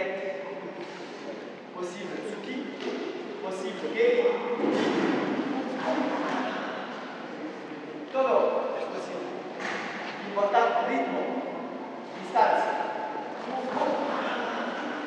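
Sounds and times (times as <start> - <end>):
indistinct voices in a hall: 0.0 - 15.0.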